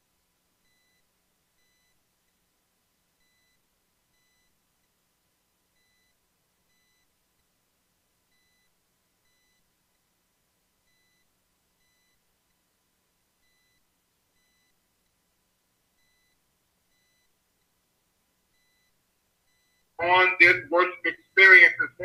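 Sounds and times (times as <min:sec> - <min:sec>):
faint electronic beep: 0:00.6 - 0:02.4, 0:03.2 - 0:05.0, 0:05.7 - 0:07.5, 0:08.3 - 0:10.2, 0:10.8 - 0:12.8, 0:13.4 - 0:15.2, 0:16.0 - 0:17.8, 0:18.5 - 0:22.0.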